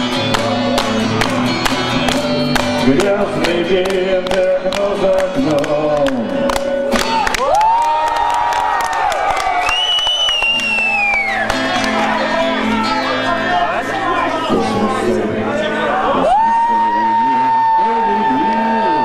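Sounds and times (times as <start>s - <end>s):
crowd cheering and shouting: 0.0s - 4.2s, 6.9s - 19.0s
electric guitar strumming: 0.0s - 7.6s, 10.5s - 19.0s
long high whistle: 9.6s - 11.5s.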